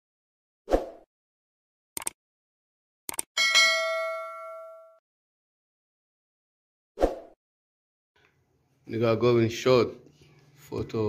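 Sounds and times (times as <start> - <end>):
notification bell ding: 3.4 - 5.0.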